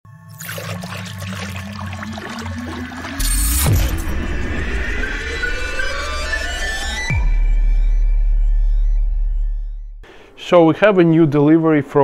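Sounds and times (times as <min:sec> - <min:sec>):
liquid pouring and swirling: 0:00.2 - 0:05.5.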